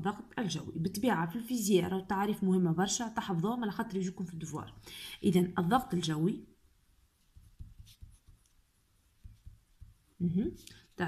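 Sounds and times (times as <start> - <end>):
pen scratching on paper: 7.3 - 8.6.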